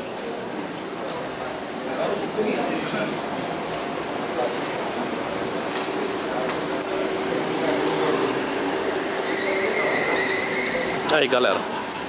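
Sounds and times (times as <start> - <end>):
people chattering in a hall: 0.0 - 12.0.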